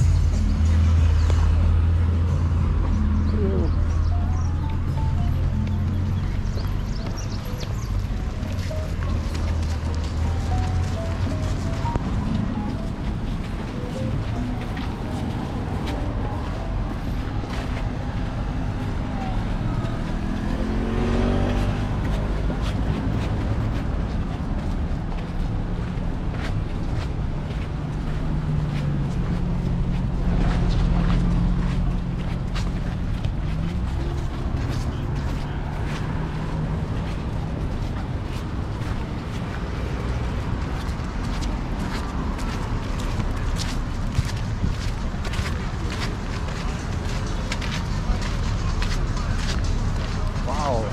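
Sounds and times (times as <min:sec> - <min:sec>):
road traffic passing: 0:00.0 - 0:50.9
steady engine hum: 0:00.0 - 0:50.9
vehicle accelerating: 0:00.0 - 0:50.9.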